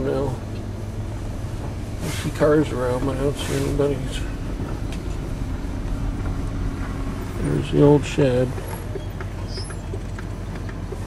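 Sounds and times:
engine and road rumble: 0:00.0 - 0:11.0.

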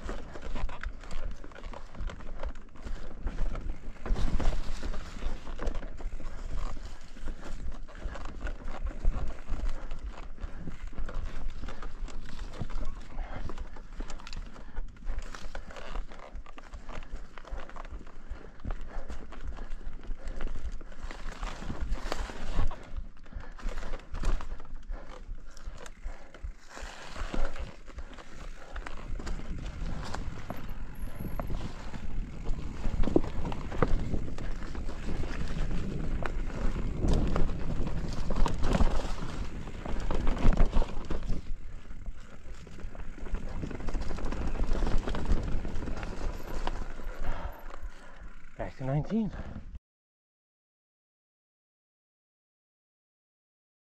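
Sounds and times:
bike tyres crunching on leaves: 0:00.0 - 0:13.5, 0:18.2 - 0:48.6
bike clattering over bumps: 0:02.2 - 0:12.8, 0:25.3 - 0:48.1.

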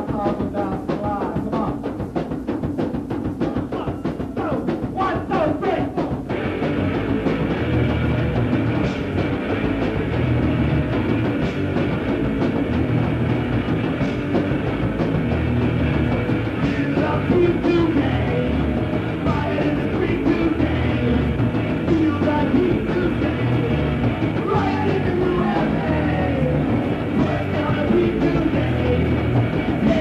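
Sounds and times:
fast drumming: 0:00.0 - 0:30.0
punk rock band: 0:00.0 - 0:30.0.

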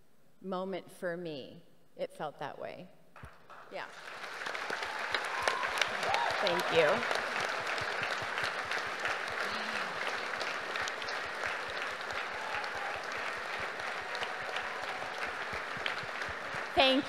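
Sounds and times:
audience applauding: 0:03.2 - 0:17.0
faint voice from crowd: 0:09.4 - 0:11.5.

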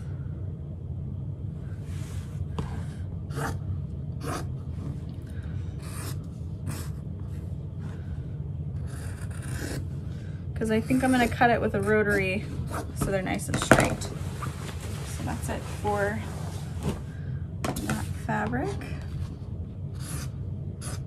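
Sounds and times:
steady low hum: 0:00.0 - 0:21.0
cloth rustling: 0:14.1 - 0:17.2.

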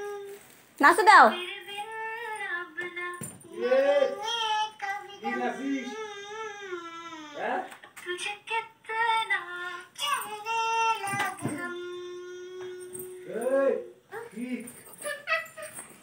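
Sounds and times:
woman singing and talking: 0:00.8 - 0:04.2
child singing: 0:01.3 - 0:13.4.

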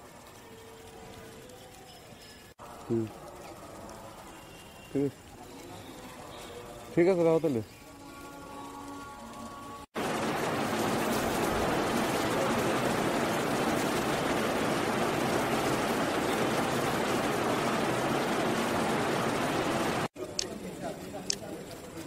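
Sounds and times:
steady rushing noise: 0:10.0 - 0:20.1.

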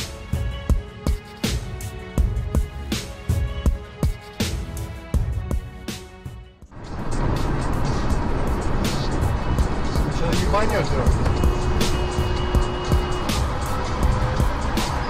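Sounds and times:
car road and engine noise: 0:00.0 - 0:15.0
music: 0:00.0 - 0:15.0.

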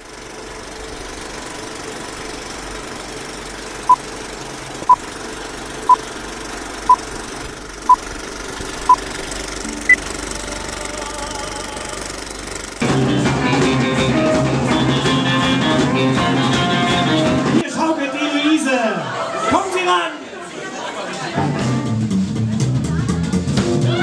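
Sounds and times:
film projector running: 0:00.0 - 0:13.0
short countdown beeps: 0:09.7 - 0:10.2.

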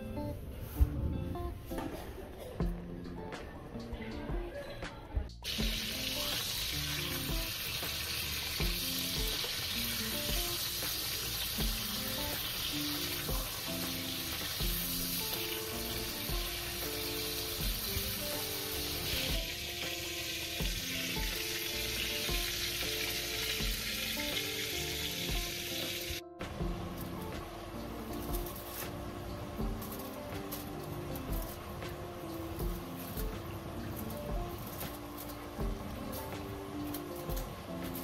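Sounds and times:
music with steady beat: 0:00.0 - 0:38.0
bacon sizzling in frying pan: 0:05.4 - 0:38.0.

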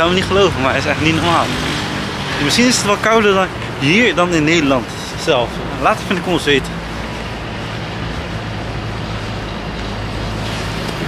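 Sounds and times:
city road traffic: 0:00.0 - 0:11.0.

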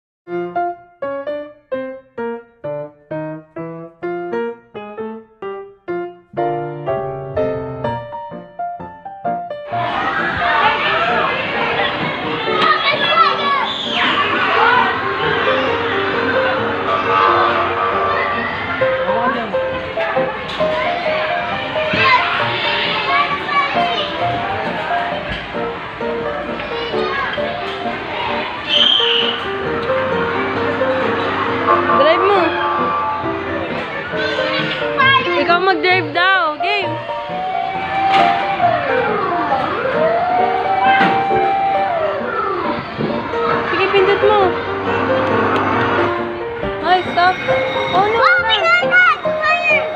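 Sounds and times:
background music: 0:00.3 - 0:49.9
children calling and chattering: 0:09.7 - 0:49.9
toy siren warbling: 0:37.3 - 0:42.6.

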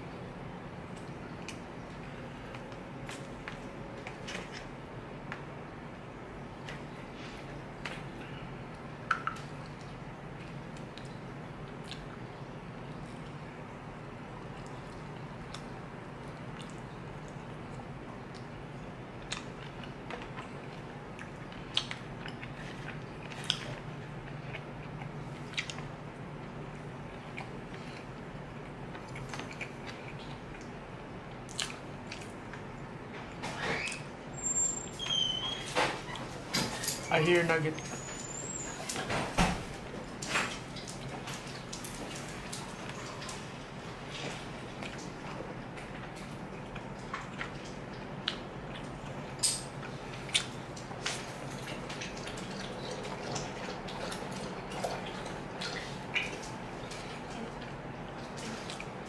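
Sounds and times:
steady low hum: 0:00.0 - 0:35.0
person chewing: 0:09.6 - 0:12.2, 0:19.2 - 0:25.9, 0:31.3 - 0:32.7, 0:49.8 - 0:50.9.

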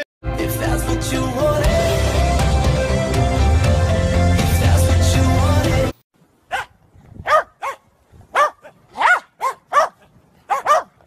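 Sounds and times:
small dogs barking: 0:06.5 - 0:11.0.

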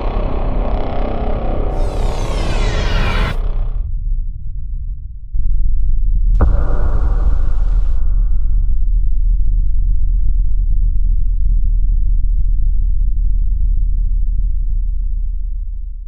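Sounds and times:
deep sustained rumble: 0:03.1 - 0:16.0.

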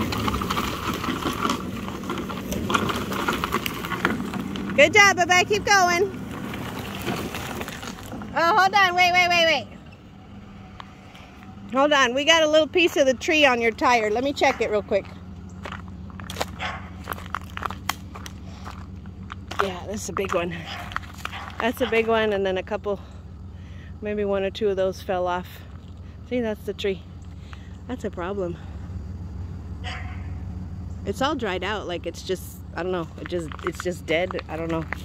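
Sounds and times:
truck engine running: 0:00.0 - 0:35.0
faint crackles: 0:12.8 - 0:22.2
footsteps on leaves and gravel: 0:14.5 - 0:22.2, 0:33.0 - 0:35.0.

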